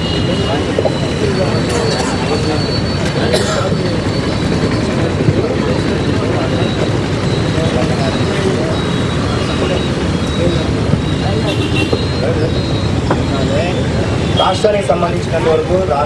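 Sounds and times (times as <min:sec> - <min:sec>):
indistinct voices: 0:00.0 - 0:16.0
road traffic noise: 0:00.0 - 0:16.0.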